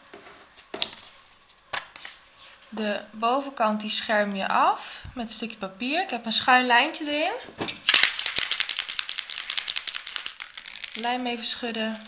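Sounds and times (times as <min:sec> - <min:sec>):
aerosol can rattling: 0:07.9 - 0:12.0.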